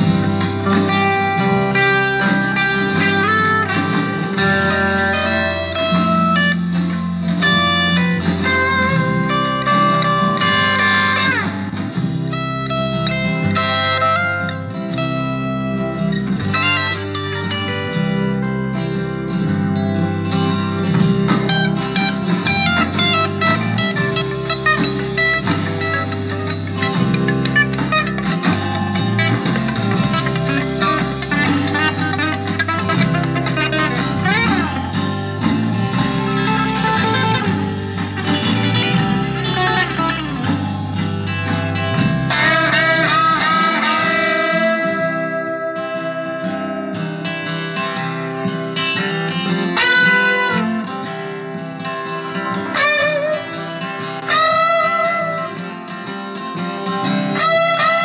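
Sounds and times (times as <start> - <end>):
backing track bass notes: 0.0 - 58.0
electric guitar lead line: 0.0 - 58.0.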